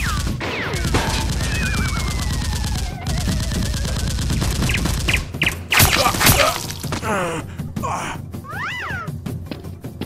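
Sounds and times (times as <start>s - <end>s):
loud gunshots: 0.0s - 6.7s.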